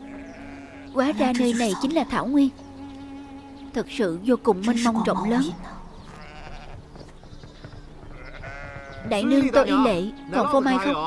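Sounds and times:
sheep bleating: 0:00.0 - 0:01.9, 0:04.7 - 0:06.9, 0:08.1 - 0:11.0.

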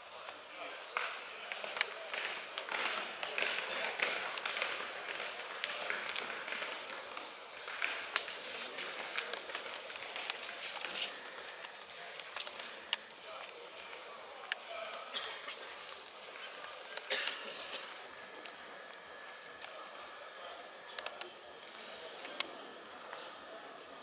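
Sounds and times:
crowd chatter: 0:00.0 - 0:24.0.

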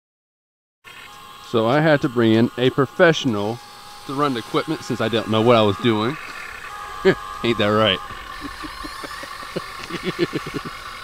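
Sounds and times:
steady high hum: 0:00.9 - 0:11.0
man laughing: 0:08.1 - 0:11.0.

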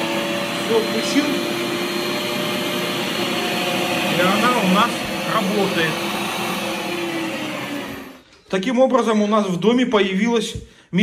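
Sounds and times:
meat grinder motor hum: 0:00.0 - 0:08.2.

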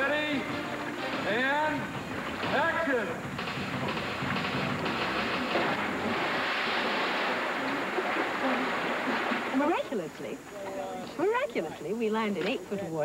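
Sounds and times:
river water rushing: 0:04.9 - 0:10.2.

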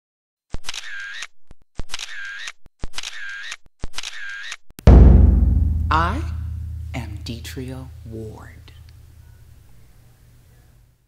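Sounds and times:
loud deep boom: 0:04.9 - 0:08.1.

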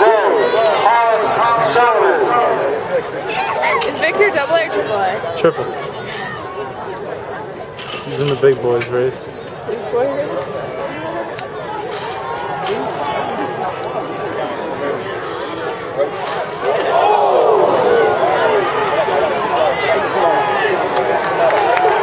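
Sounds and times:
crowd talking and shouting: 0:00.0 - 0:22.0.

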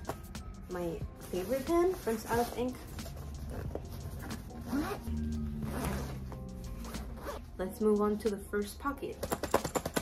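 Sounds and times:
background music: 0:00.0 - 0:10.0
backpack zipper being pulled: 0:03.5 - 0:07.5.

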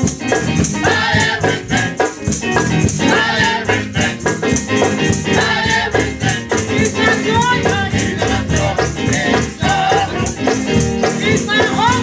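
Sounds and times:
instrumental accompaniment: 0:00.0 - 0:12.0
percussion beat: 0:00.0 - 0:12.0
vocal group singing in harmony: 0:00.8 - 0:02.3, 0:03.0 - 0:12.0.

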